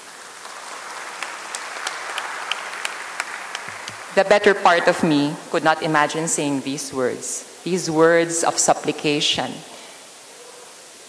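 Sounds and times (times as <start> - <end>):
people applauding: 0.0 - 5.0.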